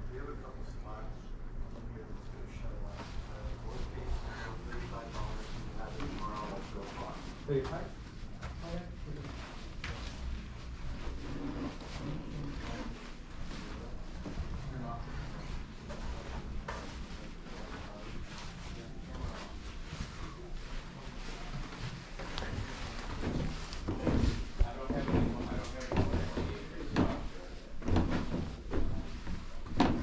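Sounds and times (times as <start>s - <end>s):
footsteps on carpet: 2.8s - 30.0s.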